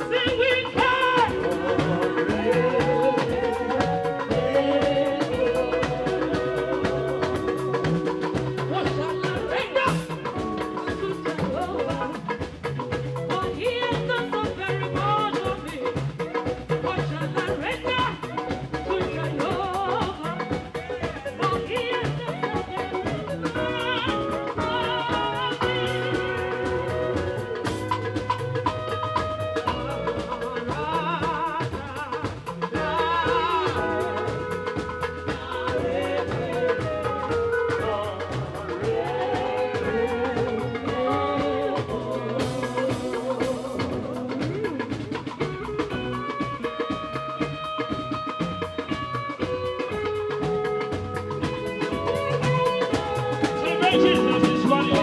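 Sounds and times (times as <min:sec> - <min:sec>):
women singing: 0:00.0 - 0:28.8, 0:29.6 - 0:47.2, 0:51.4 - 0:55.0
drum kit and keyboard: 0:00.0 - 0:55.0.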